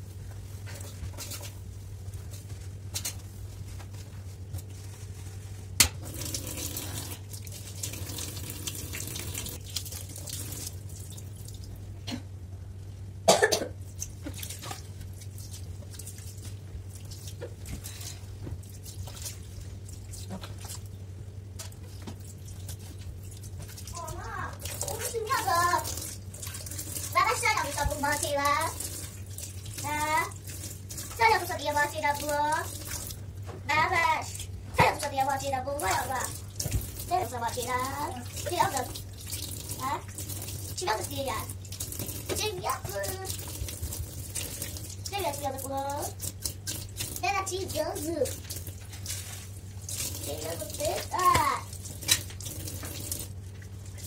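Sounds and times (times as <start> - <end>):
water running into a sink: 5.8 - 11.8, 21.6 - 33.3, 33.9 - 54.0
basin being scrubbed: 21.7 - 54.0
child's high-pitched voice: 23.9 - 26.0, 27.1 - 28.8, 29.8 - 30.4, 31.2 - 32.7, 33.6 - 36.4, 37.1 - 39.0, 39.8 - 40.1, 40.8 - 41.5, 42.3 - 43.4, 45.1 - 46.2, 47.2 - 48.4, 50.2 - 51.7.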